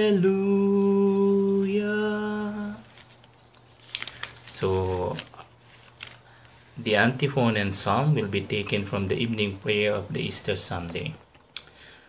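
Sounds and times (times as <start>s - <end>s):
paper pages rustling: 2.7s - 7.2s.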